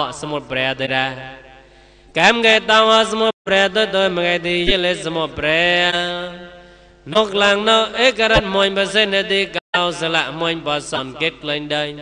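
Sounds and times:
man chanting: 0:00.0 - 0:01.6, 0:02.2 - 0:12.0.

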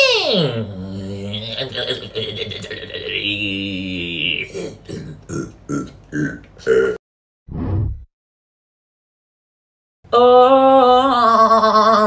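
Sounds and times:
man making wordless vocal sounds: 0:00.6 - 0:07.0.

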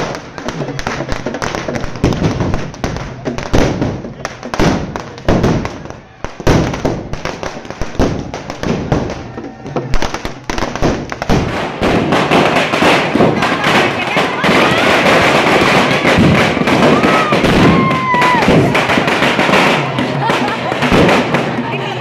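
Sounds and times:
firecrackers bursting: 0:00.0 - 0:22.0.

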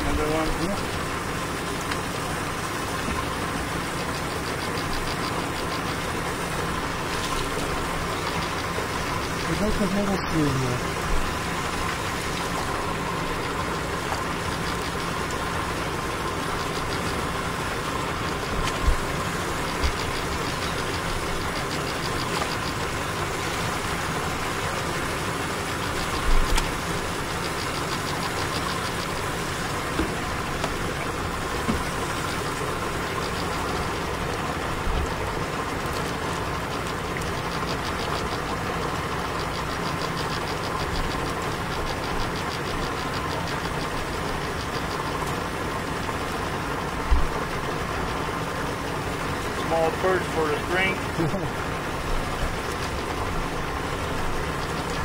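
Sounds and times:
motor humming: 0:00.0 - 0:55.0.

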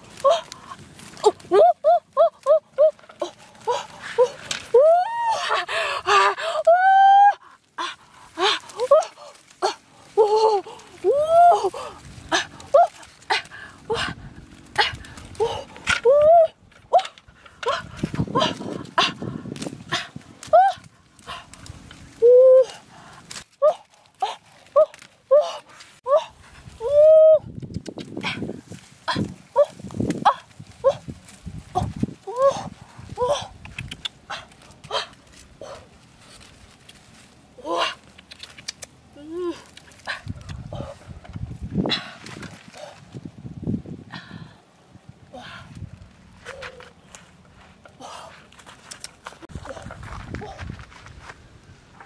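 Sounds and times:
leafy branches rustling: 0:00.0 - 0:52.0.

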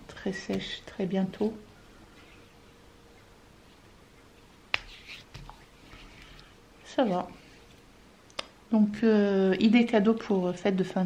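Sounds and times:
hands rubbing cream soft swishing: 0:04.7 - 0:07.9.

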